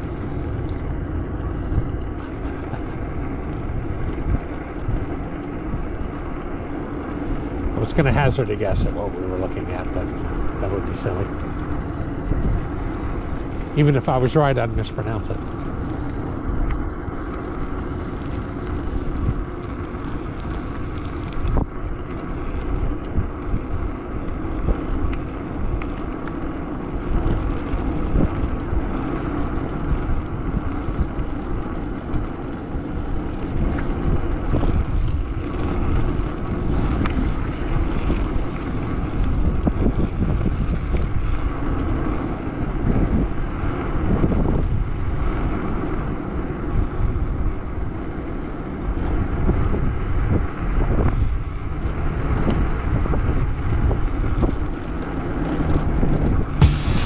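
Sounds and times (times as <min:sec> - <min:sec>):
bicycle tyre road noise: 0:00.0 - 0:57.0
wind over microphone: 0:00.0 - 0:57.0.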